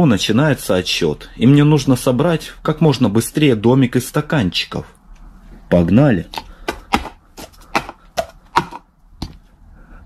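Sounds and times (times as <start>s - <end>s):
plastic cups clacking: 6.3s - 9.4s.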